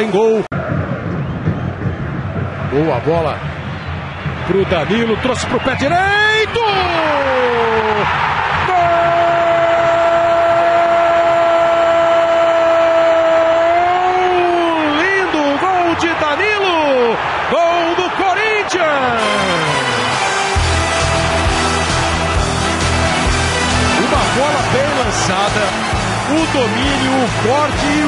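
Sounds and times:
music with steady beat: 19.2 - 28.0.

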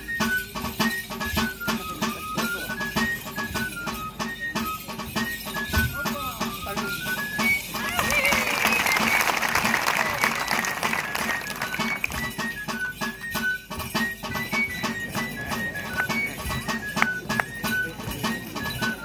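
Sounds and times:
flute playing high dance tune: 0.0 - 19.0.

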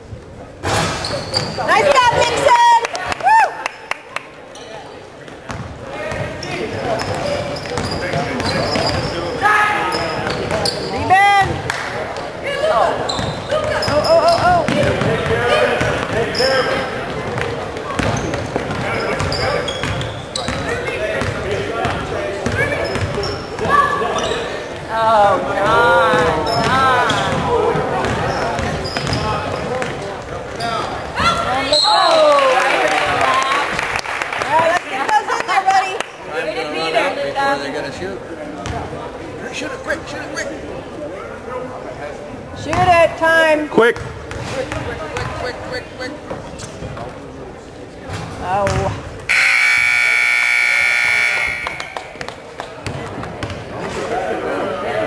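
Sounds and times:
ball bouncing on wooden court: 13.2 - 16.2, 17.3 - 23.8, 51.6 - 53.7
voices calling out: 49.3 - 52.5.

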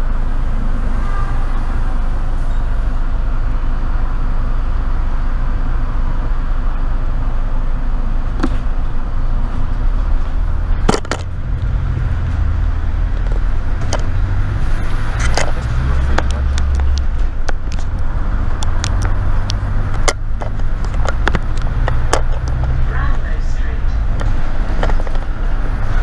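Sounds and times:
bus engine droning: 0.0 - 26.0
bus body rattling: 7.0 - 26.0.

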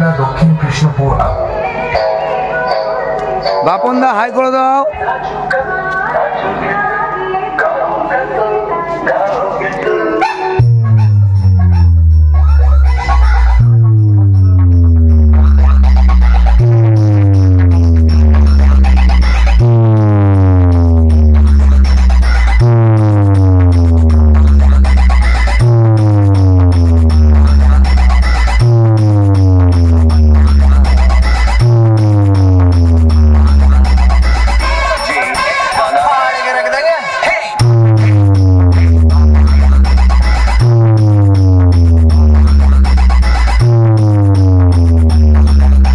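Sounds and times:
loud electronic music: 0.0 - 6.9, 9.1 - 45.9
deep bass tone stepping down: 10.4 - 34.6, 37.6 - 45.9.

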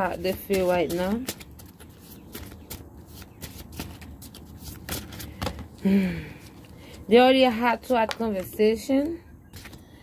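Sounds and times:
cards being shuffled: 0.2 - 5.7, 9.5 - 9.8.

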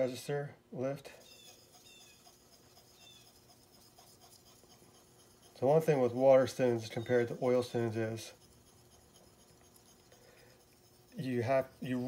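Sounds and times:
chisel rubbing on wet stone: 1.2 - 12.0.

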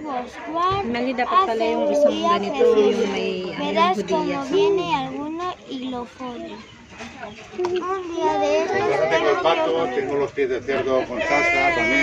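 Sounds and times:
children talking and calling: 0.0 - 12.0.

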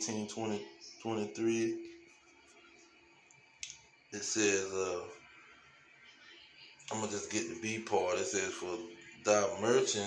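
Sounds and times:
person speaking: 0.0 - 1.8, 4.2 - 5.2, 6.9 - 10.0.

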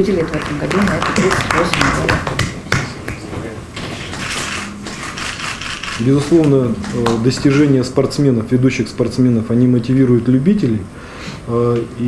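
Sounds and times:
light applause: 0.0 - 7.6.

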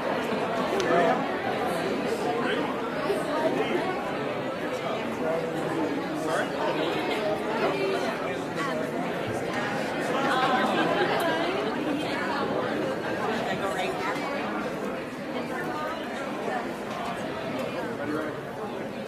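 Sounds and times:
many voices chatting: 0.0 - 19.0.

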